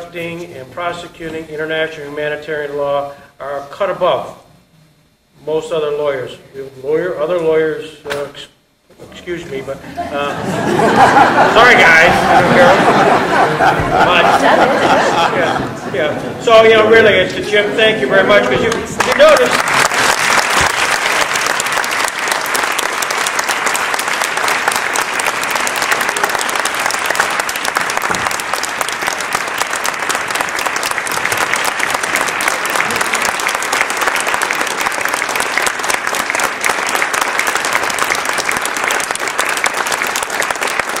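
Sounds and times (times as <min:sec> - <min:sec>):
audience applauding: 0:10.5 - 0:15.6, 0:18.2 - 0:41.0.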